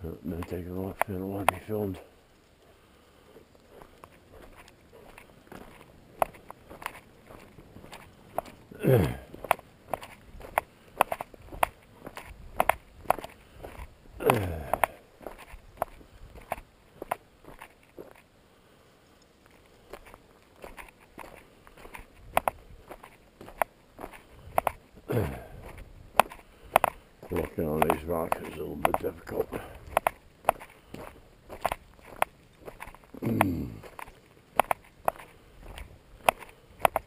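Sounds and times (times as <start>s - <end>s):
footsteps crunching on gravel: 0.0s - 2.0s, 3.3s - 18.3s, 19.4s - 37.0s.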